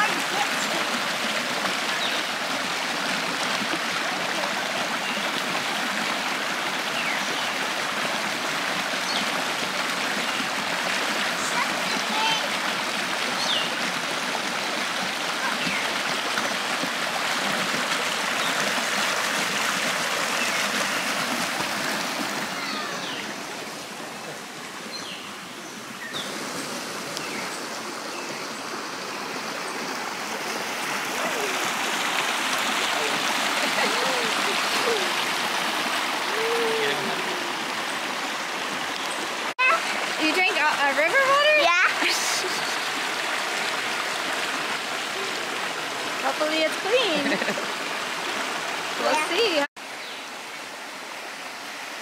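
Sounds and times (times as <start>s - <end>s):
river rushing over rocks: 0.0s - 52.0s.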